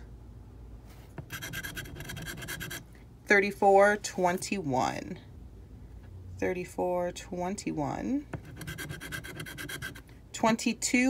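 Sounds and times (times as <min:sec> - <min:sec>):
scratching lottery ticket: 0:01.2 - 0:02.8, 0:08.4 - 0:10.1.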